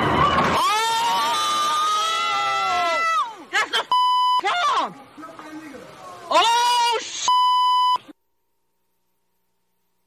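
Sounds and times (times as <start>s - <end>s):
people shouting: 0.1s - 3.9s, 6.1s - 7.2s
censor bleep: 3.9s - 4.4s, 7.3s - 8.1s.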